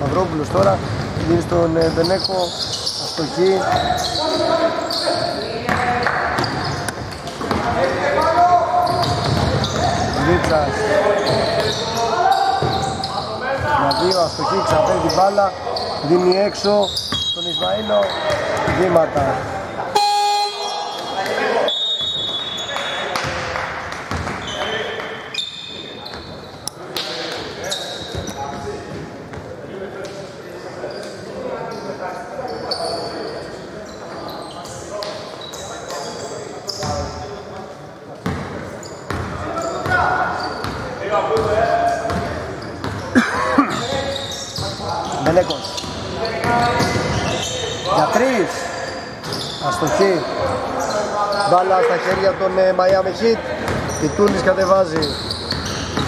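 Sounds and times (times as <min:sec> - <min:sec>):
players' voices echoing: 0:00.0 - 0:56.0.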